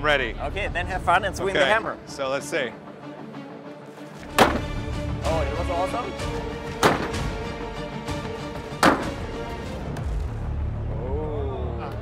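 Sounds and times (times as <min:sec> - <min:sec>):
background music: 0:00.0 - 0:12.0
hammer striking pad: 0:06.8 - 0:07.3, 0:08.8 - 0:09.2.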